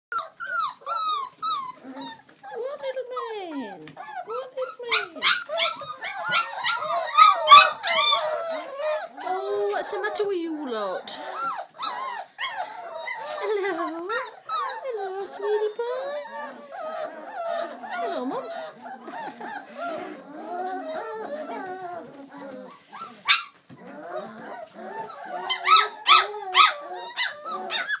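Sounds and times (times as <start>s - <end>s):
puppies whimpering and crying: 0.1s - 28.0s.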